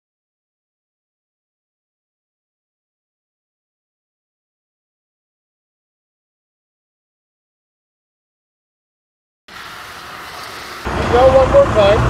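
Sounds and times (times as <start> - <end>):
traffic: 9.5 - 12.0.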